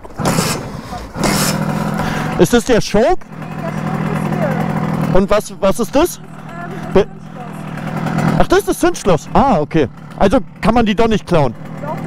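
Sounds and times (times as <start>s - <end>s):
moped engine idling: 0.1s - 12.0s.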